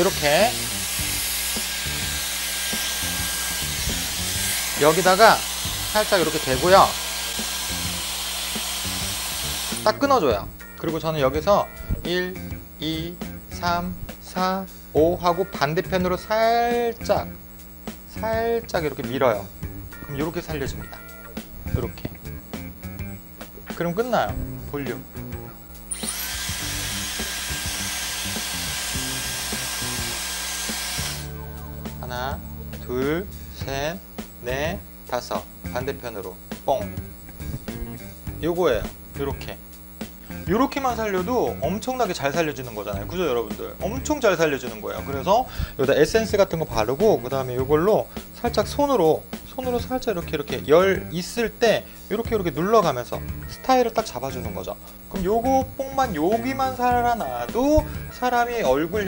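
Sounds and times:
hair styler blowing air: 0.0 - 10.1, 25.8 - 31.4.

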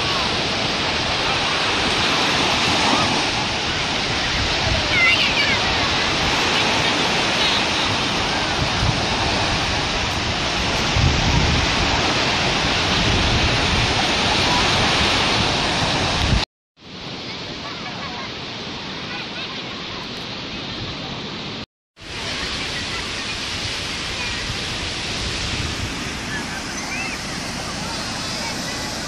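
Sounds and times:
waves breaking on sandy shore: 0.0 - 29.0
faint distant voices: 25.9 - 29.0.

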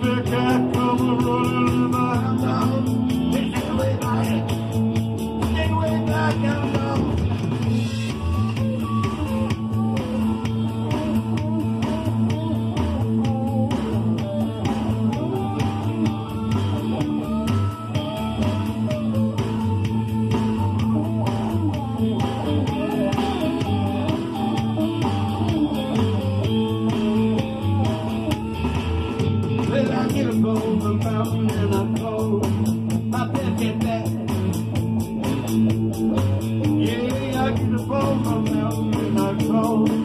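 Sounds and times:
bass guitar: 0.0 - 40.0
steady drum beat: 0.0 - 40.0
lead guitar melody: 14.0 - 40.0.

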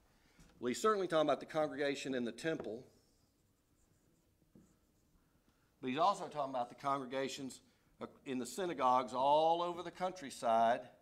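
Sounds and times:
man talking: 0.6 - 3.0, 5.8 - 11.0
marker writing on whiteboard: 2.9 - 5.2.

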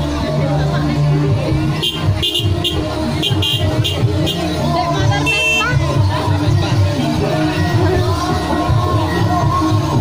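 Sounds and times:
vehicle horn beeping: 1.8 - 4.5, 5.2 - 5.8.

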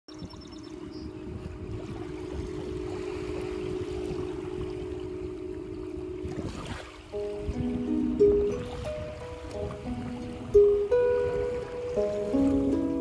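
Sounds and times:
seawater washing at shore: 0.1 - 13.0
wind buffeting microphone: 0.1 - 13.0.

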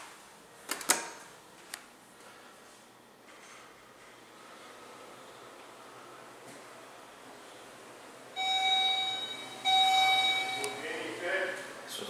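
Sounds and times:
elevator arrival chime: 8.4 - 11.1.

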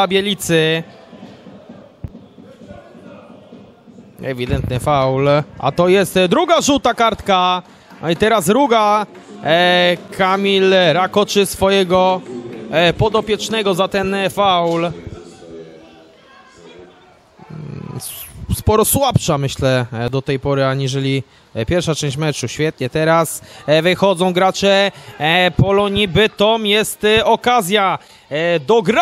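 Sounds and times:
man speaking: 0.0 - 0.9, 4.2 - 15.9, 16.8 - 29.0
distant indistinct voices: 0.0 - 18.4.

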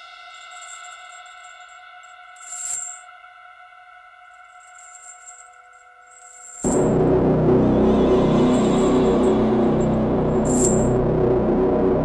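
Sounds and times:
ambient drone with metallic shimmer: 0.0 - 12.0.

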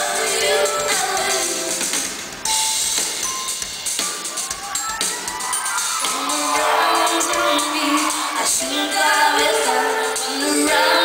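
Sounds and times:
live pop-rock band playing: 0.0 - 11.0.

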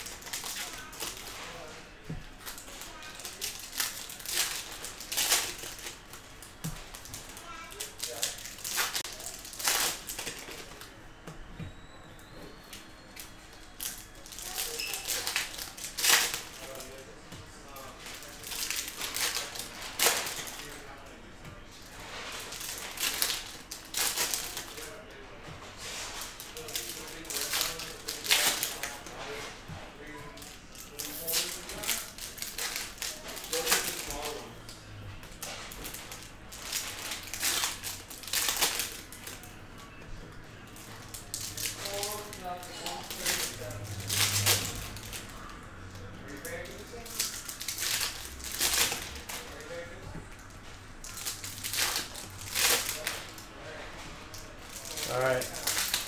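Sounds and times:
foil wrappers crinkling: 0.0 - 11.2, 12.3 - 56.0.

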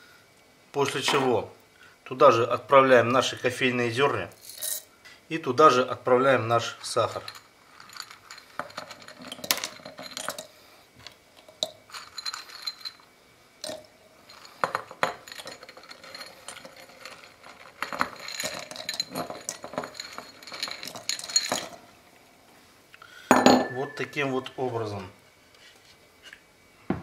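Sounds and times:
sugar cubes clinking on glass: 4.4 - 4.9, 11.5 - 21.8.

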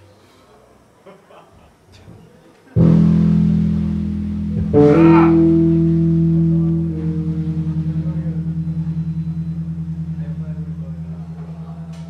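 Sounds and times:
electric guitar chords with tremolo: 2.8 - 12.0.

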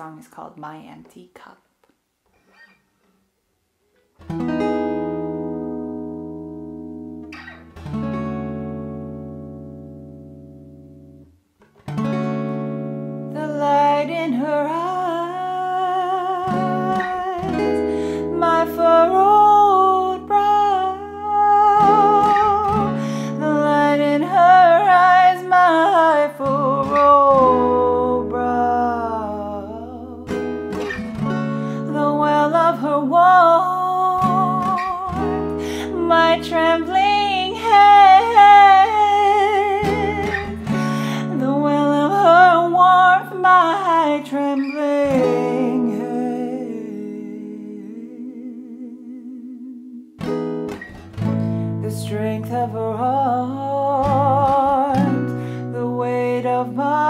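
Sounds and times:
acoustic guitar strumming: 2.3 - 3.3, 3.9 - 48.2, 50.0 - 57.0
woman singing: 13.3 - 50.8, 51.6 - 57.0.

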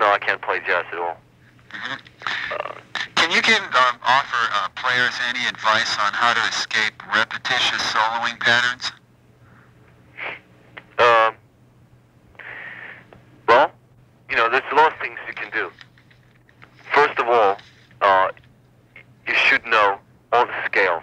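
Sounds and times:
man speaking over telephone: 0.0 - 1.2, 1.8 - 9.0, 10.8 - 11.4, 13.5 - 15.8, 16.8 - 18.4, 19.0 - 21.0
steady low hum: 0.0 - 21.0.

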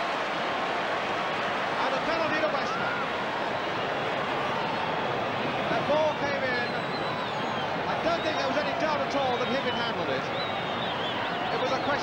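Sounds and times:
faint crowd shouts: 0.0 - 12.0
stadium crowd hubbub: 0.0 - 12.0.

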